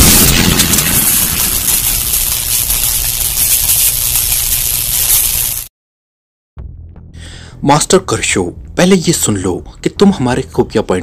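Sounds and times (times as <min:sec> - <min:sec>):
bright hiss: 0:00.0 - 0:05.7.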